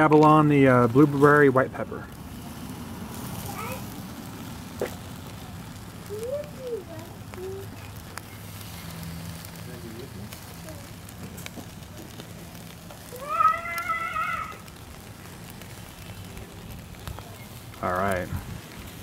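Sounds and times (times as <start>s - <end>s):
meat sizzling on grill: 0.0s - 19.0s.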